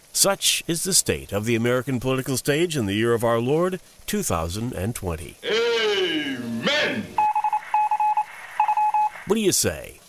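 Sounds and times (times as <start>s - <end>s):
rapid electronic beeps: 7.2s - 9.3s.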